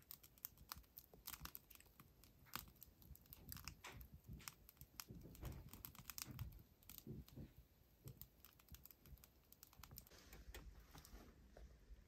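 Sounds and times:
wood fire crackling: 0:00.0 - 0:12.0.

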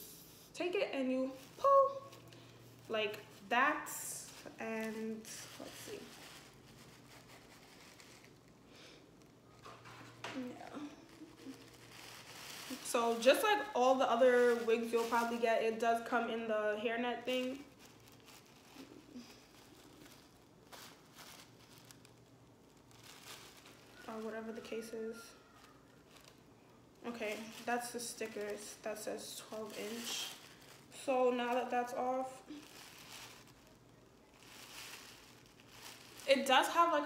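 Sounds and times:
hairnet rustling and crinkling: 0:00.0 - 0:37.0.

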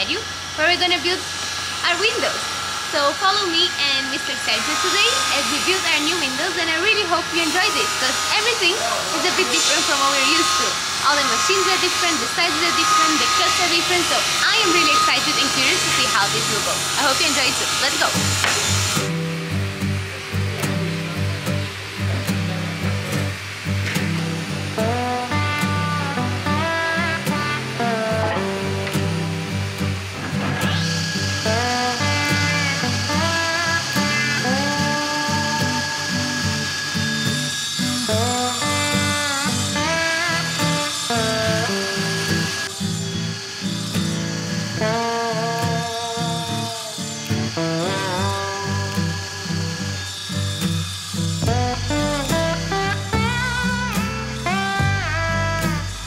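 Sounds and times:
table saw cutting wood: 0:00.0 - 0:56.0
background music: 0:17.9 - 0:50.3, 0:51.3 - 0:56.0.

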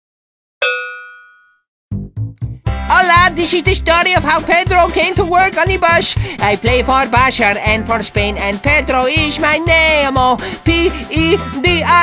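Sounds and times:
metallic bell-like ding: 0:00.6 - 0:01.6
music beat: 0:01.9 - 0:12.0.

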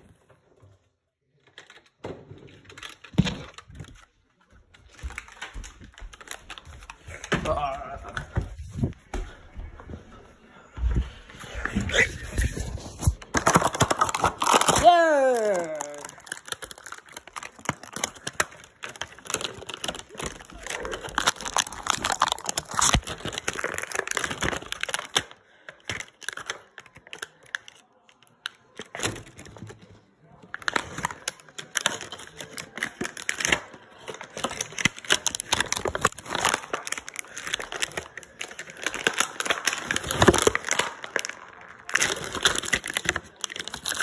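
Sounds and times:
packaging crinkling and tearing: 0:02.5 - 0:08.2, 0:11.9 - 0:29.9, 0:30.5 - 0:44.0.

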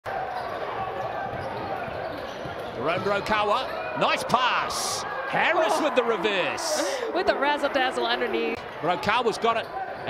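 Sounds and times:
arena crowd murmur: 0:00.1 - 0:10.0
basketball dribbling on court: 0:00.2 - 0:03.6.

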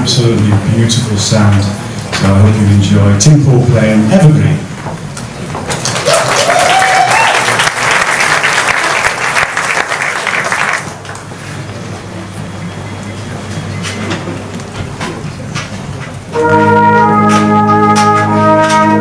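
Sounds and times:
hall noise: 0:00.0 - 0:19.0
audience applauding: 0:05.6 - 0:11.4.

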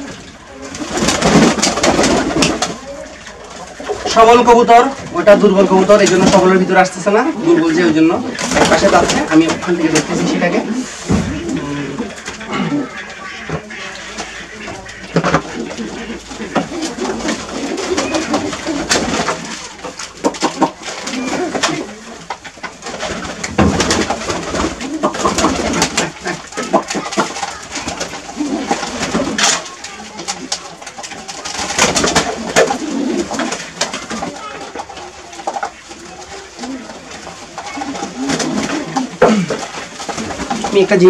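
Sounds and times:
pigeons cooing: 0:00.0 - 0:41.0
wing flutters and clicks: 0:15.0 - 0:41.0.

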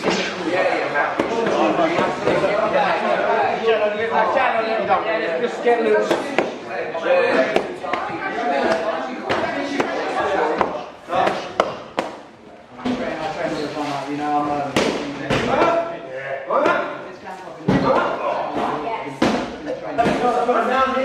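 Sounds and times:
voices chattering: 0:00.0 - 0:21.0.

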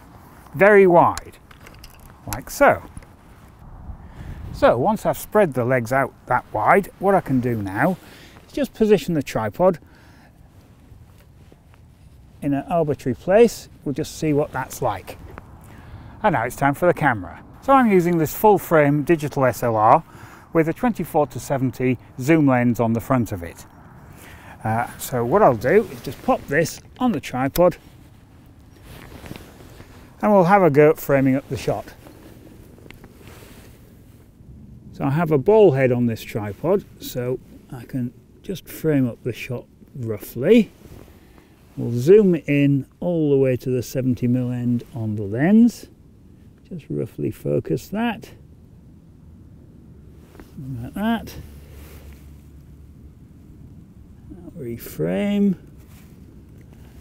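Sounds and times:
jacket rustling: 0:00.0 - 0:03.8, 0:04.6 - 0:09.4, 0:10.0 - 0:15.8, 0:22.2 - 0:38.0
wind rumble on microphone: 0:00.0 - 0:09.1, 0:10.5 - 0:30.2.

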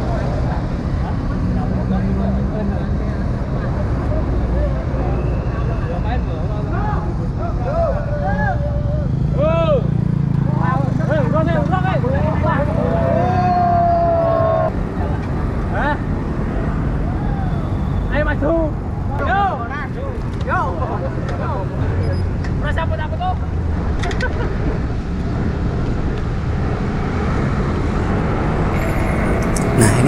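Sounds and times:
road traffic: 0:00.0 - 0:30.0
indistinct voices: 0:28.7 - 0:30.0.

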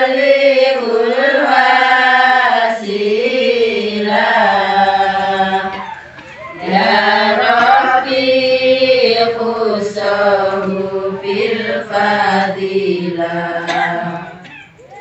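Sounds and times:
women singing devotional chant: 0:00.0 - 0:14.7.

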